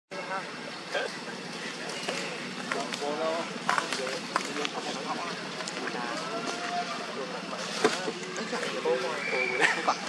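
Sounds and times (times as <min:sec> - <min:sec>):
outdoor background noise: 0:00.1 - 0:10.0
monkeys cooing and squeaking: 0:08.2 - 0:10.0.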